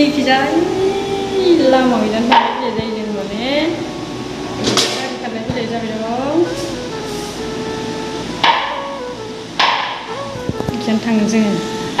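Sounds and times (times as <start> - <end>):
faint steady tones: 0.0 - 12.0.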